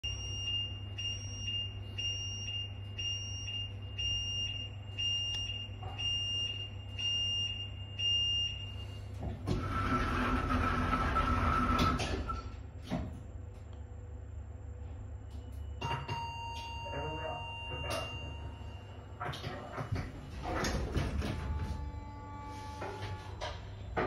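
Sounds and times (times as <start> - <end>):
sliding doors closing: 9.2 - 12.3, 19.8 - 24.0
steady low hum: 12.2 - 24.0
high warning beeps: 15.4 - 19.2.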